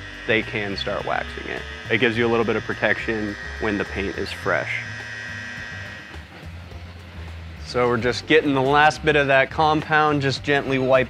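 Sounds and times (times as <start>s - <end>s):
electric buffer running: 0.0s - 10.1s
background music: 0.0s - 11.0s.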